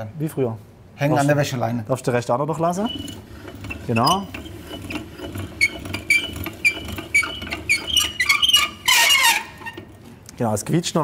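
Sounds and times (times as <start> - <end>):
pasta machine squeaking: 2.5 - 10.1.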